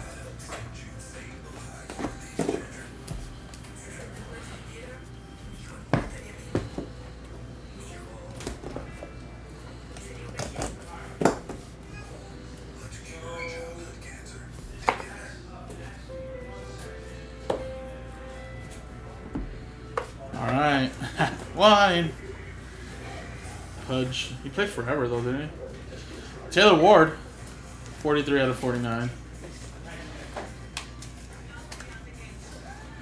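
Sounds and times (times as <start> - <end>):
quiet background music: 0.0 - 33.0.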